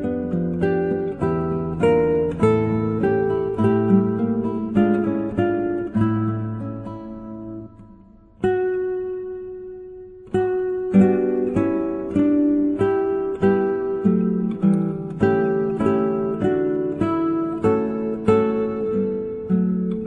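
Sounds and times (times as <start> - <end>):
acoustic guitar music: 0.0 - 20.0.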